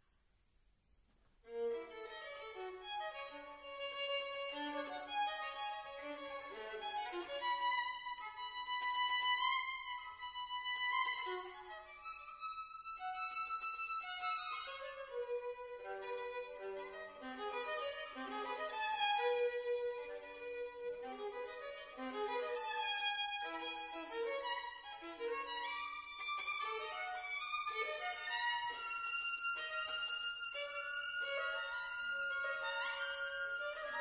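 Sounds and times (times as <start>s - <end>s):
solo violin: 1.4s - 34.0s.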